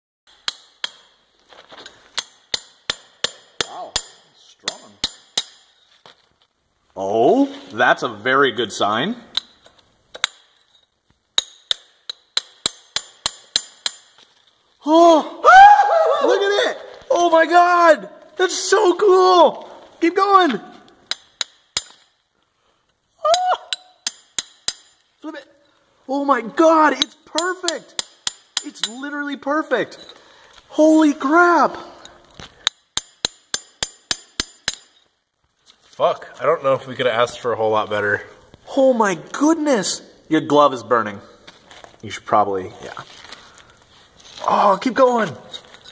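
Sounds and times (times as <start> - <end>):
chisel tapping on metal: 0.3 - 1.2, 2.2 - 5.8, 9.3 - 10.6, 11.4 - 14.2, 21.0 - 22.2, 23.3 - 25.1, 27.0 - 29.0, 32.3 - 35.1.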